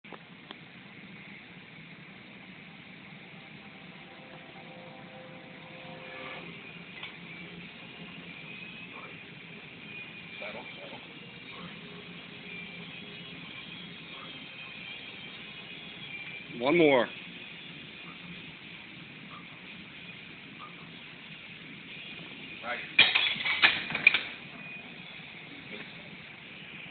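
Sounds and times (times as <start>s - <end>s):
low hum and hiss: 0.1s - 16.4s.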